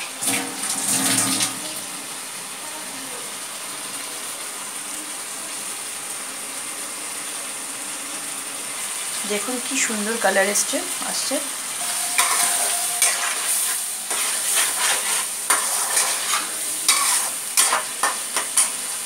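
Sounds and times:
gravy simmering and sizzling: 0:00.0 - 0:19.0.

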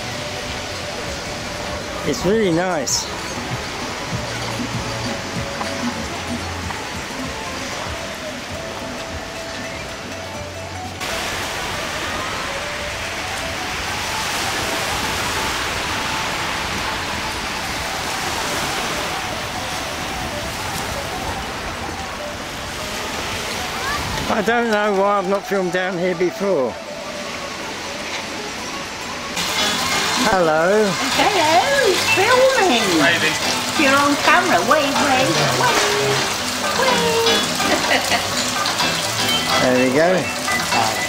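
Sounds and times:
background music with bass: 0:00.0 - 0:41.0
waves breaking on pebble beach: 0:11.0 - 0:25.8.

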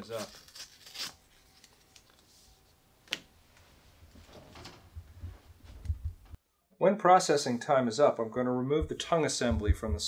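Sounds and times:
clothing rustling on microphone: 0:03.6 - 0:06.4
soft low thumps: 0:04.9 - 0:06.4, 0:08.8 - 0:10.0.

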